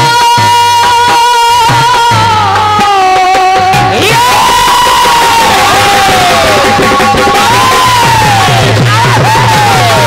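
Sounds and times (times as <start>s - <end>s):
devotional folk music: 0.0s - 10.0s
harmonium melody: 0.0s - 10.0s.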